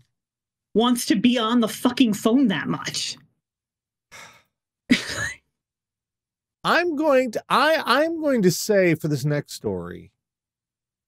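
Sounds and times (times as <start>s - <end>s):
person breathing out: 4.1s - 4.5s.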